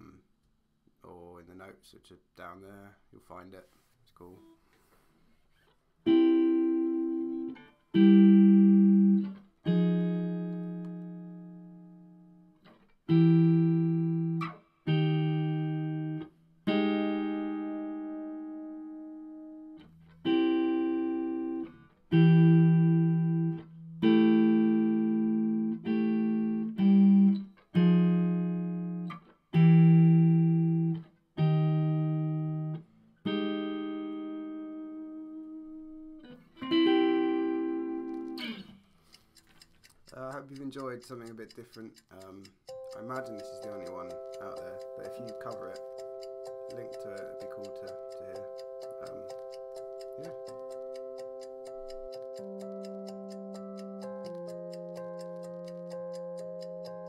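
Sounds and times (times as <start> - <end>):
clean electric guitar chords: 6.1 - 38.8, 42.7 - 57.0.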